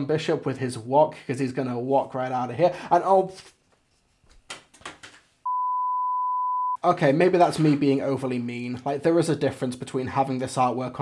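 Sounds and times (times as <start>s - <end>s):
high-pitched censor bleep: 5.5s - 6.8s.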